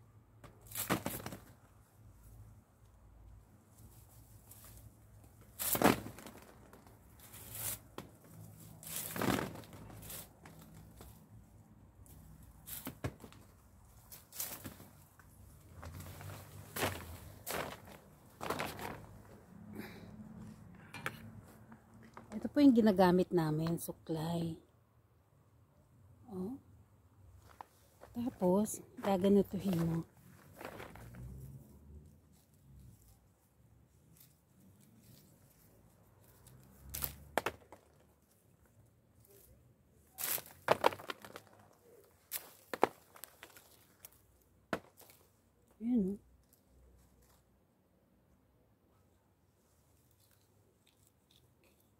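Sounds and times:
leaves and twigs rustling and snapping: 0:03.8 - 0:11.4, 0:12.0 - 0:19.4, 0:34.2 - 0:45.4
plastic sheet crinkling: 0:08.7 - 0:10.8, 0:16.0 - 0:19.2.

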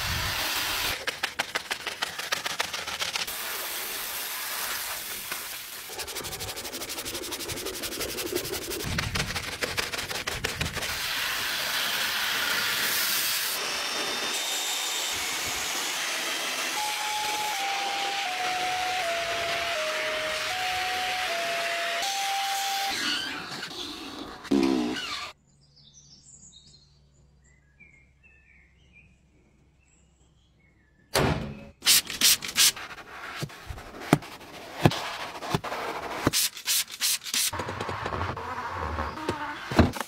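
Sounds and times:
steam cleaner jet hissing: 0:00.0 - 0:01.0, 0:03.3 - 0:07.7, 0:10.7 - 0:22.2, 0:36.3 - 0:37.6.

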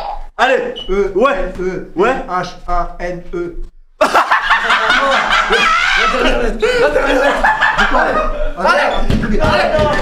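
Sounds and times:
men laughing loudly: 0:04.0 - 0:08.6.

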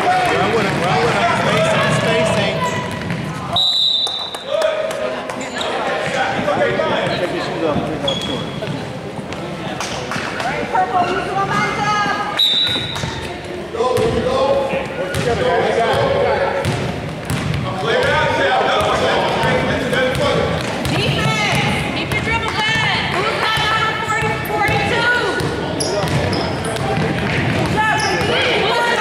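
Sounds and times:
echoing chatter: 0:00.0 - 0:29.0
basketball bouncing on wooden floor: 0:16.6 - 0:18.1, 0:18.8 - 0:28.3.

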